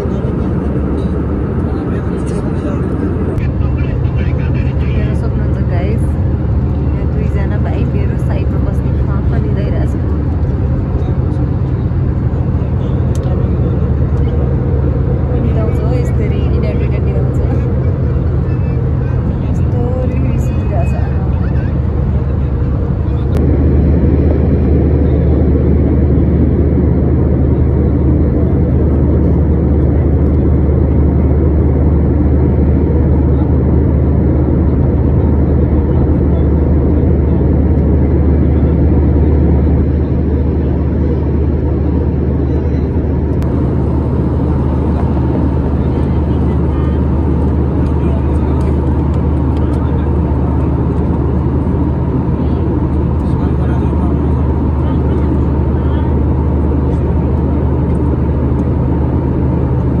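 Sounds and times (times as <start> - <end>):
airliner cabin drone: 0.0 - 60.0.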